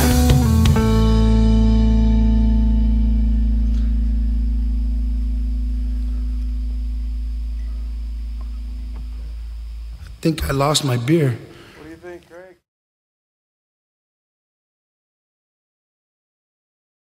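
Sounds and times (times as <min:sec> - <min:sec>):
held electric guitar chord: 0:00.0 - 0:12.1.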